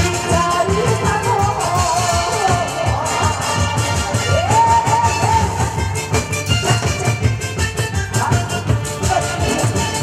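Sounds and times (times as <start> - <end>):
upbeat trot music over a pa: 0.0 - 10.0.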